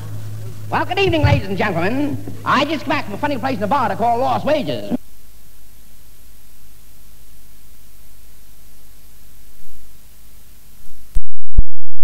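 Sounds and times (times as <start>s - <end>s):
recording hiss: 0.0s - 11.3s.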